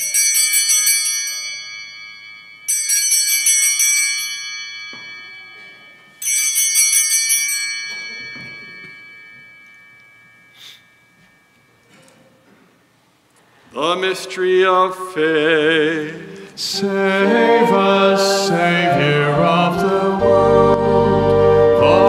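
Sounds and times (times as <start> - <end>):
altar bells jingling: 0.0 - 12.4.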